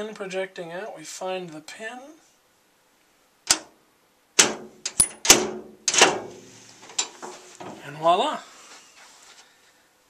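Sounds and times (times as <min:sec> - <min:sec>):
metallic lock clicks: 0:04.4 - 0:06.2.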